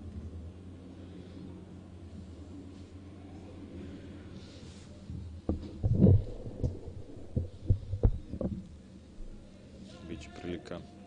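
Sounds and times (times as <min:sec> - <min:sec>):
irregular low thumps: 0:05.5 - 0:09.4.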